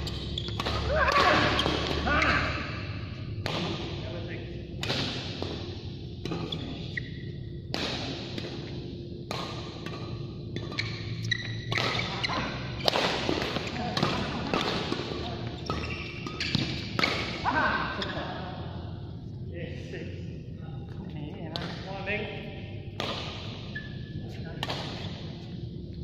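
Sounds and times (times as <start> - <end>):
rackets striking shuttlecock: 0.0 - 2.6, 3.3 - 4.0, 4.8 - 17.4, 22.9 - 23.8, 24.6 - 25.3.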